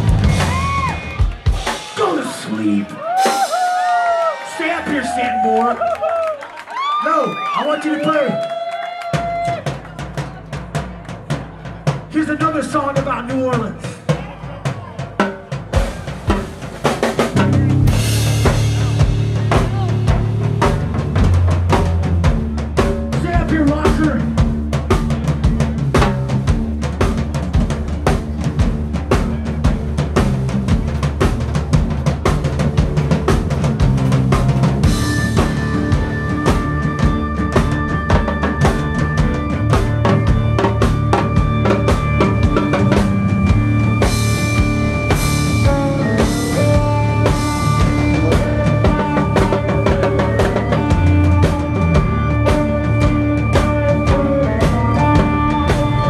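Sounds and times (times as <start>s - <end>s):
bass line: 0.0s - 5.4s, 9.2s - 56.0s
drum groove: 0.0s - 6.1s, 7.0s - 56.0s
live band playing: 0.0s - 56.0s.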